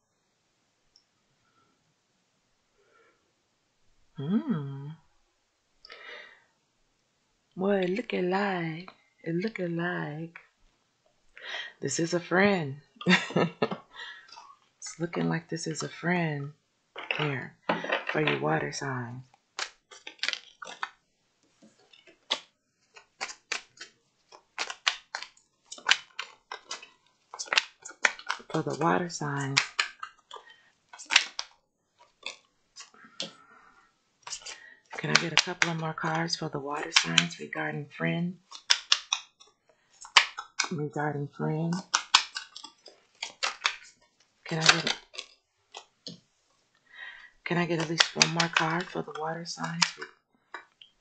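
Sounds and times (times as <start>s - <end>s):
cards being shuffled: 19.6s - 21.0s, 21.6s - 33.4s, 34.2s - 35.9s, 36.8s - 37.4s, 38.4s - 40.8s, 41.7s - 46.2s, 47.5s - 50.0s.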